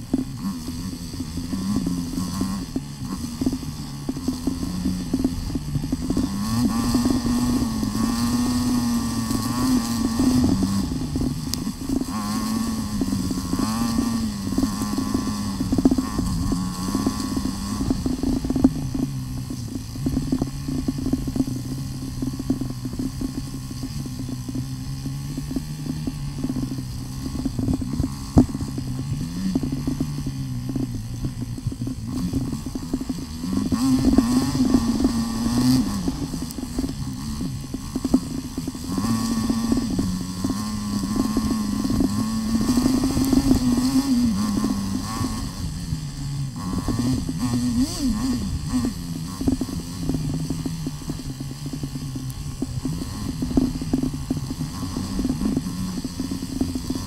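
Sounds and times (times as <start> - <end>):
motorcycle engine on dirt trail: 0.0 - 57.0.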